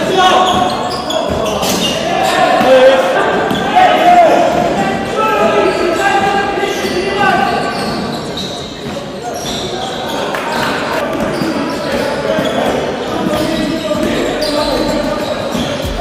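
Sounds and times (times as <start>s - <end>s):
players calling out: 0.0s - 16.0s.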